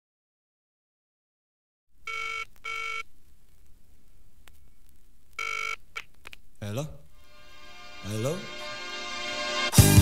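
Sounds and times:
record surface hiss: 1.9 - 10.0
telephone ringing: 2.0 - 3.1, 5.4 - 5.8.

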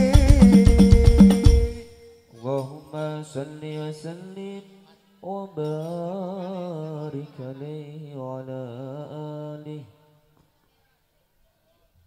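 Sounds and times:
man chanting unaccompanied: 0.0 - 10.2.

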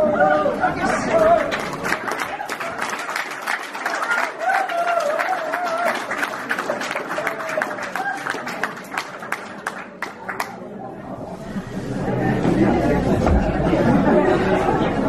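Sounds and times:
audience applause: 0.8 - 10.8.

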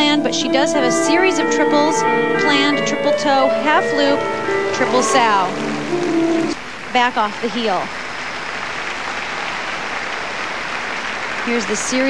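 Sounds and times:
audience applauding: 4.0 - 12.0.

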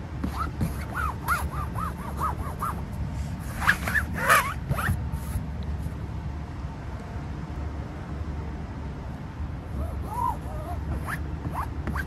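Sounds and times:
squeaks of rubbed inflatable kayak: 0.2 - 2.8, 3.4 - 5.4, 9.8 - 12.0.

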